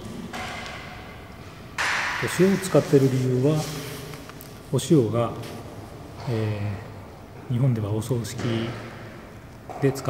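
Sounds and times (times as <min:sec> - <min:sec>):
loud steady hiss: 0:01.8 - 0:07.0.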